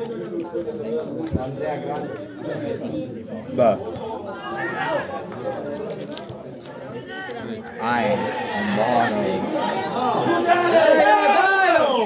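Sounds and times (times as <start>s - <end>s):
men talking over one another: 0.0s - 12.0s.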